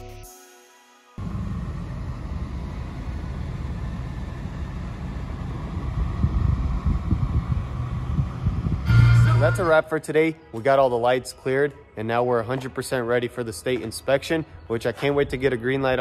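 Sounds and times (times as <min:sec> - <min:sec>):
truck engine rumble from inside cab: 0:01.2 - 0:09.6.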